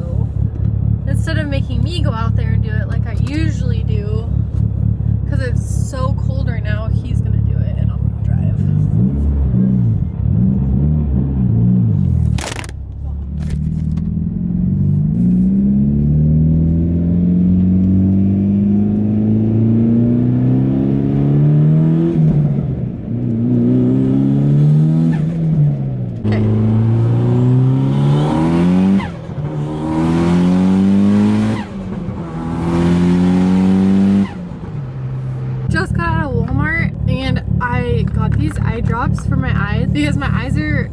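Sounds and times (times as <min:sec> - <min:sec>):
car engine accelerating: 0:00.0 - 0:40.9.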